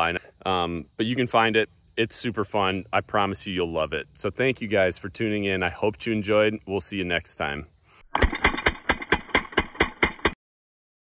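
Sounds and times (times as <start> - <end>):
bb rifle firing rapid shots: 8.2 - 10.4.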